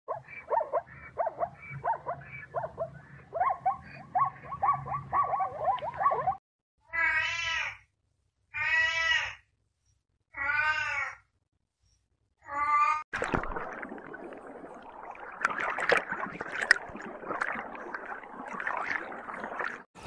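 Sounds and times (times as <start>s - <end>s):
zebra yelping barks: 0.1s - 6.4s.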